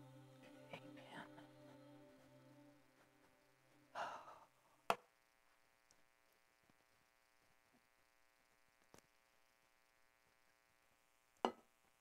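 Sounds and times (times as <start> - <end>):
person sighing: 3.9 - 4.6.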